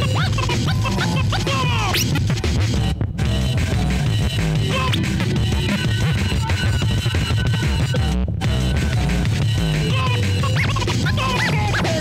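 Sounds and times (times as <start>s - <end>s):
steady beat: 0.0s - 12.0s
turntable scratching: 0.0s - 12.0s.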